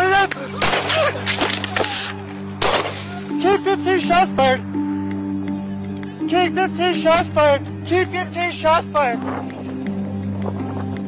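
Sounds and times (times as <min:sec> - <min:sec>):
loud handgun shots: 0:00.6 - 0:01.5, 0:02.6 - 0:03.1.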